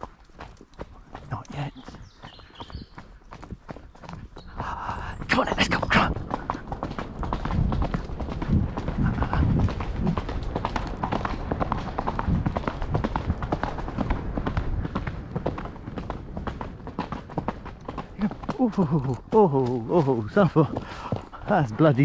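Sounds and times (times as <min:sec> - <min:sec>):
horse hoofbeats on dirt path: 0:00.0 - 0:22.0.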